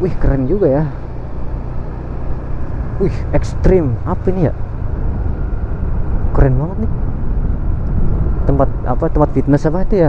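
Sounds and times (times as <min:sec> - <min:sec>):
road noise: 0:00.0 - 0:10.0
scooter engine humming: 0:00.0 - 0:10.0.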